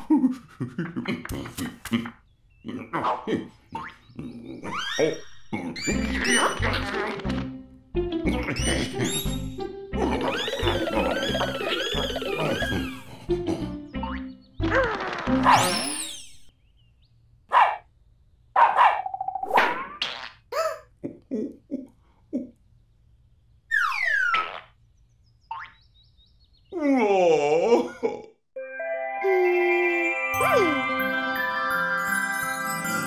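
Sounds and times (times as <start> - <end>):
playful cartoon music: 4.6 - 16.5, 28.6 - 33.0.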